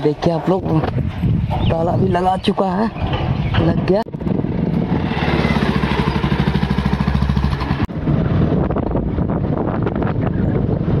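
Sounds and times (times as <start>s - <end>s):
motorcycle engine running: 4.2s - 10.9s.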